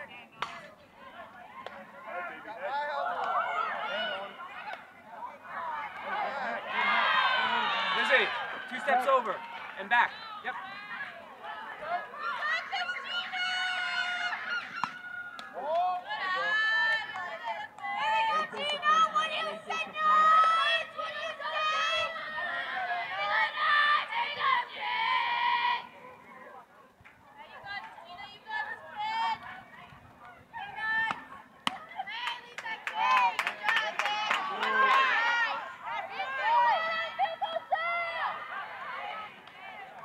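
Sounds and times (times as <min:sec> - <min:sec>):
children shouting and chanting: 0:16.0 - 0:25.9, 0:34.0 - 0:40.0.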